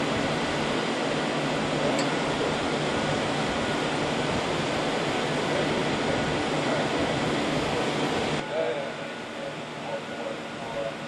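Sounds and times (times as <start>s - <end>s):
road and engine noise in car: 0.0s - 11.0s.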